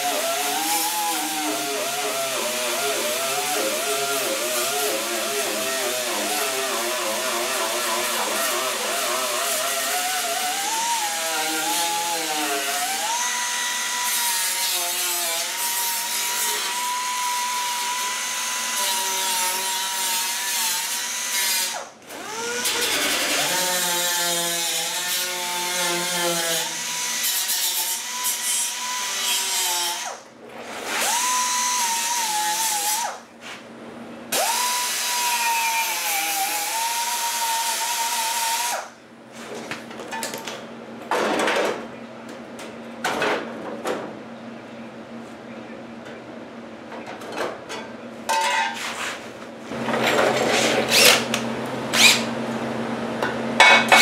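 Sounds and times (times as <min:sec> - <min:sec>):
air grinder whining on metal: 0:00.0 - 0:30.2, 0:49.7 - 0:54.0.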